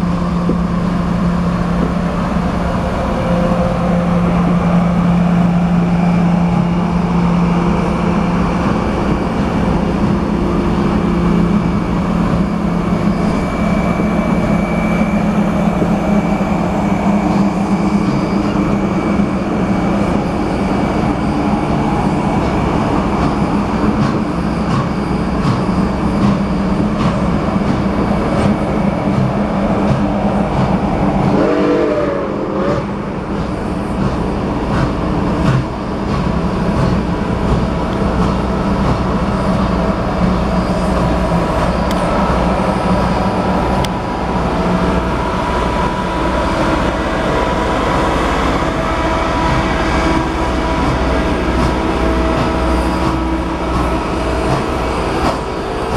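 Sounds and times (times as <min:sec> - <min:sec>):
train wheels rumbling: 0:00.0 - 0:55.9.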